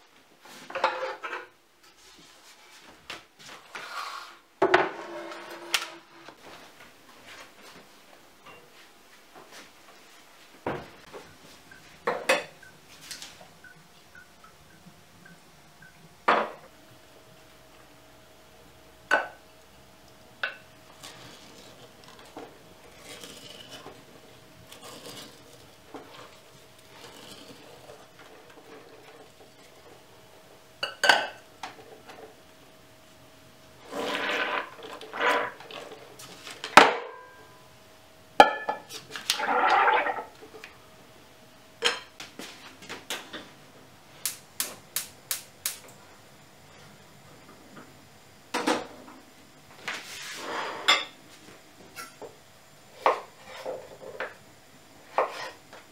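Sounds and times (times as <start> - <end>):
scraping: 33.8 - 35.9.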